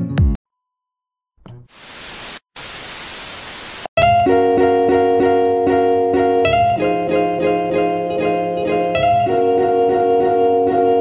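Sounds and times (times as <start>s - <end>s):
television static hiss: 1.6s - 3.9s.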